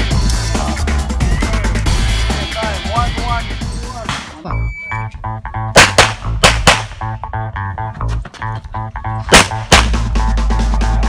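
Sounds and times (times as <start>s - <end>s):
music with bass beat and guitar: 0.0s - 11.0s
pistol shots: 5.8s - 7.0s, 9.3s - 10.0s.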